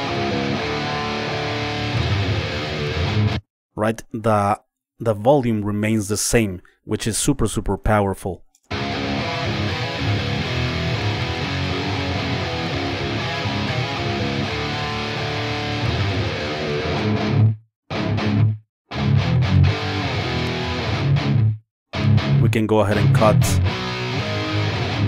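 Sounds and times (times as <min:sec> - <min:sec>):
distorted electric guitar riff: 0:00.0 - 0:03.4, 0:08.7 - 0:25.0.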